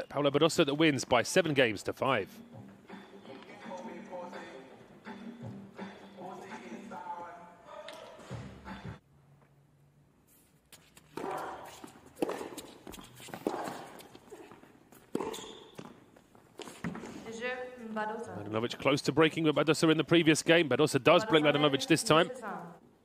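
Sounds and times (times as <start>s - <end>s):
tennis ball struck and bouncing: 11.0s - 16.0s.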